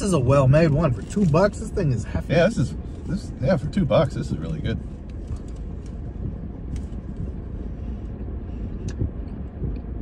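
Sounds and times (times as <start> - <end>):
low rumble inside car: 0.0 - 10.0.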